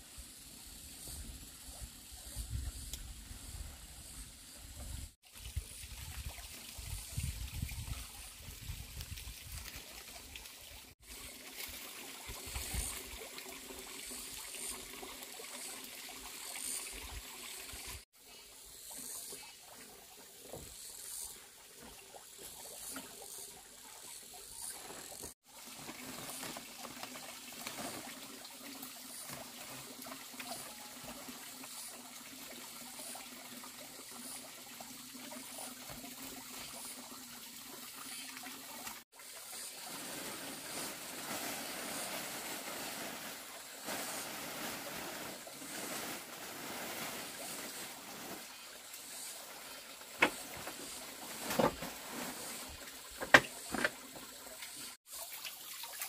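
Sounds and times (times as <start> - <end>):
trickling water rush: 5.2 - 18.1, 18.7 - 56.0.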